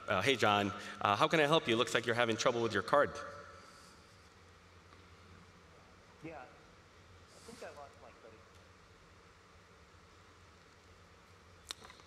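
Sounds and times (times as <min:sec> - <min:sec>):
faint hiss and low hum: 0:00.0 - 0:12.0.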